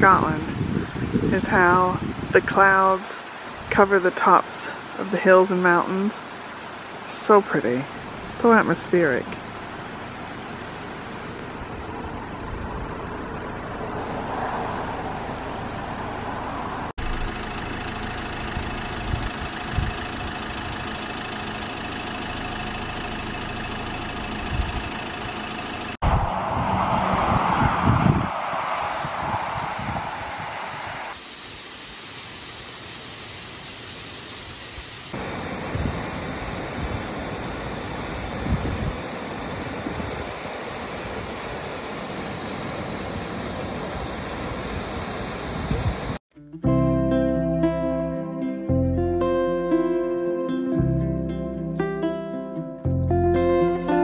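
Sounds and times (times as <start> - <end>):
steady rushing noise: 26.0 - 31.2.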